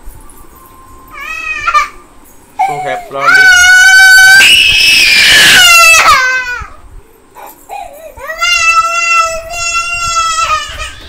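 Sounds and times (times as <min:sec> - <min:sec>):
baby crying: 0:01.2 - 0:02.0.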